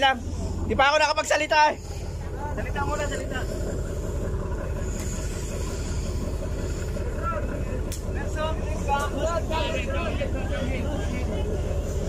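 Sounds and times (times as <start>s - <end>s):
boat engine idling: 0.0s - 12.0s
faint voices: 0.0s - 12.0s.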